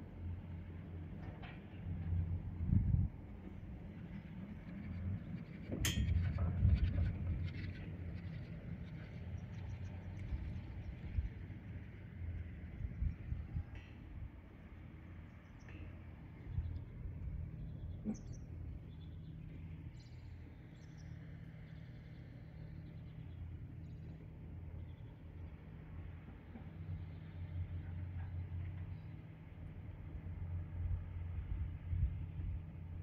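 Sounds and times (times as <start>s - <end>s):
wind buffeting microphone: 2.4s - 11.9s, 12.5s - 14.4s.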